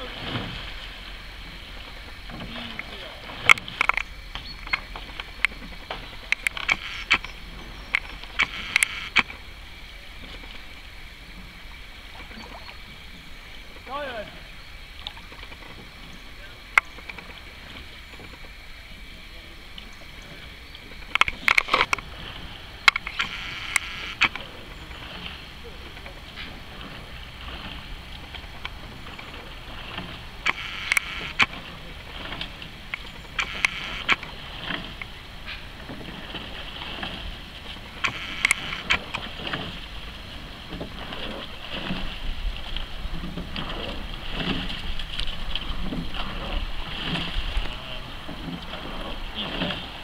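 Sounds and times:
rush of water: 0:00.0 - 0:50.0
steady low rumble: 0:00.0 - 0:50.0.

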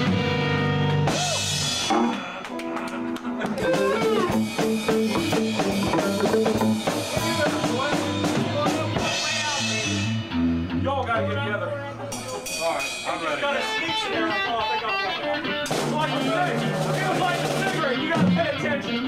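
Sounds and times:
drum kit: 0:00.0 - 0:10.9, 0:12.0 - 0:14.1, 0:15.5 - 0:19.0
electric guitars: 0:00.0 - 0:12.6, 0:13.6 - 0:19.0
lead guitar with bent notes: 0:00.0 - 0:19.0.

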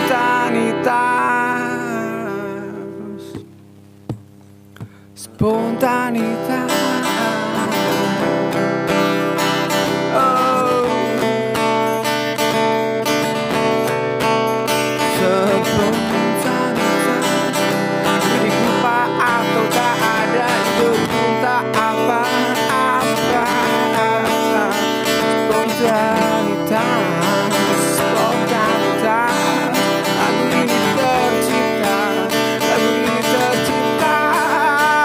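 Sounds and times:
man singing: 0:00.0 - 0:03.4, 0:05.2 - 0:11.9, 0:15.0 - 0:35.0
acoustic guitar strumming: 0:00.0 - 0:35.0.

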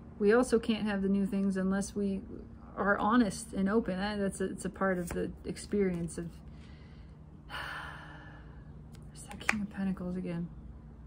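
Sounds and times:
woman sighing: 0:07.5 - 0:08.5.

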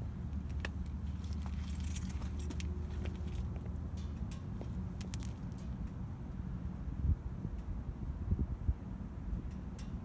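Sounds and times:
steady low rumble: 0:00.0 - 0:10.0
keys jingling: 0:01.1 - 0:03.5
high metallic ticks: 0:02.2 - 0:06.0, 0:09.4 - 0:10.0.

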